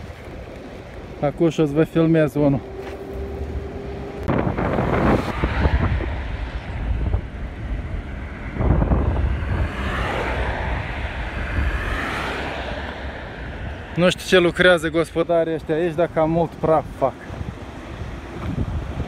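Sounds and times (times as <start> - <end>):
wind buffeting microphone: 0.0 - 19.0
car and trucks driving past: 0.1 - 16.2.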